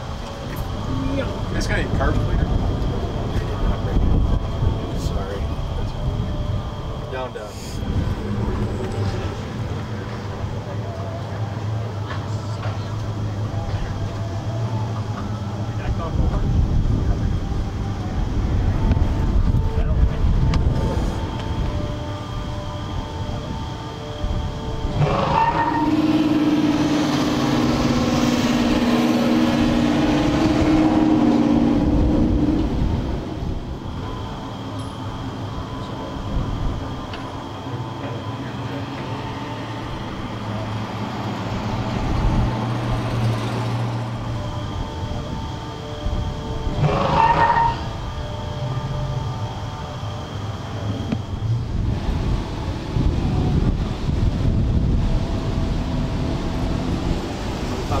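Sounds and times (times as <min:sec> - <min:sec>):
car engines running: 0:00.0 - 0:58.0.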